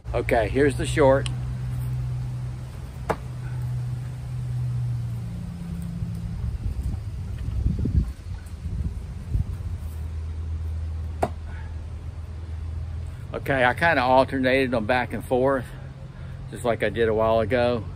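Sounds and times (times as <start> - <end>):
steady low hum: 0.0 - 17.9
knife striking wooden board: 3.1 - 3.3.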